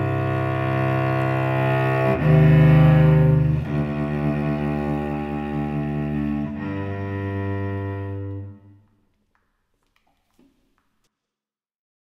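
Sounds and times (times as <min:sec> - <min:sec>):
cello bowed notes: 0:00.0 - 0:09.0.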